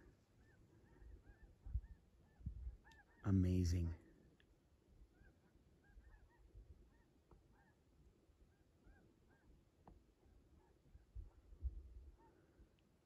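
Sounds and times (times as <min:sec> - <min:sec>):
distant bird calls: 0:00.0 - 0:13.0.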